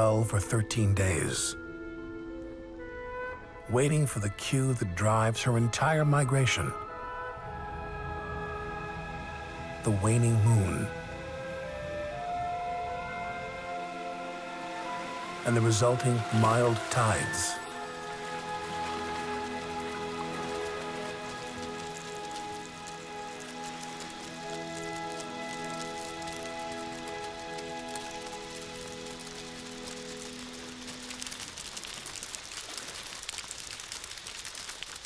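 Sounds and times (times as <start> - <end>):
sustained chord music: 0.0 - 31.5
crabs scrambling over rock: 15.9 - 35.0.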